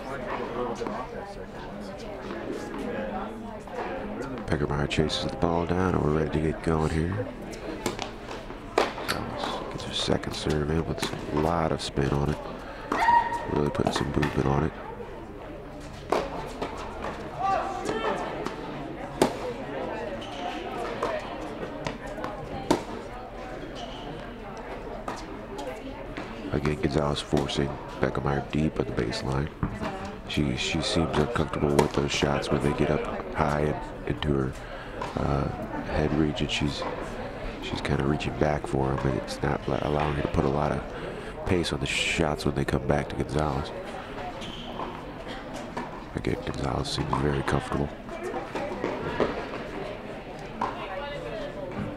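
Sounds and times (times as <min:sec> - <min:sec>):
murmuring voices: 0:00.0 - 0:51.9
tennis balls struck by racquets: 0:07.8 - 0:09.2, 0:19.2 - 0:19.5
tennis balls bouncing: 0:07.8 - 0:09.6, 0:20.8 - 0:23.0.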